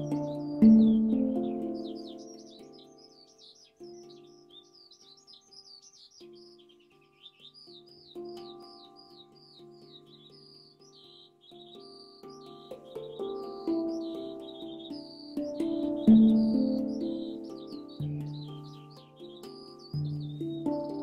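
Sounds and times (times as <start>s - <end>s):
handpan notes ringing: 0.0s - 21.0s
songbird chirping: 0.0s - 21.0s.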